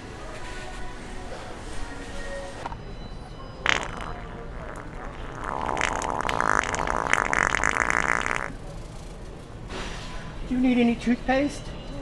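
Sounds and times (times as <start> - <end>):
wet fart noise from toy: 3.6 - 8.6.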